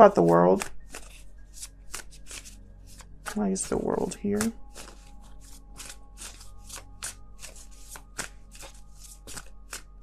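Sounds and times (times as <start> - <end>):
cards being shuffled by hand: 0.0 - 10.0
faint background music: 0.0 - 10.0.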